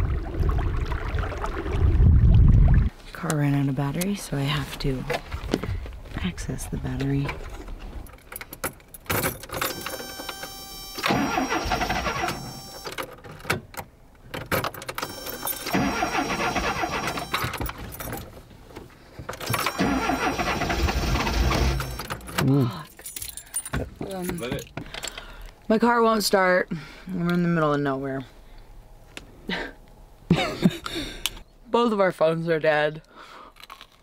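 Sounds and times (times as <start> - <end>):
engine starter cranking: 9.2 - 13.1, 14.9 - 17.7, 19.4 - 22.6.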